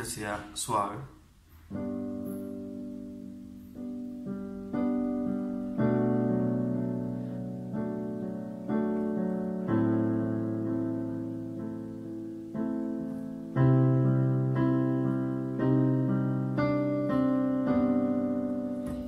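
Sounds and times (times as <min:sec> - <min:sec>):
electronic keyboard piano chords: 0:01.6 - 0:19.0.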